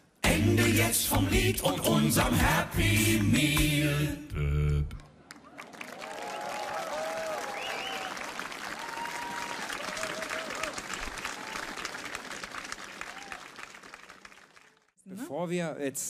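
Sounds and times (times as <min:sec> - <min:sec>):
audience applauding: 0:05.0 - 0:14.9
voices cheering: 0:05.4 - 0:12.0, 0:12.9 - 0:13.7.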